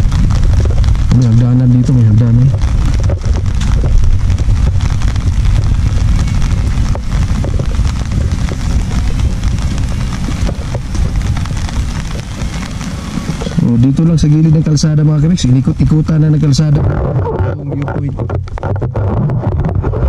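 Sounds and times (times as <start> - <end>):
rain pattering on umbrella: 0.0 - 20.0
wind noise on microphone: 0.0 - 20.0.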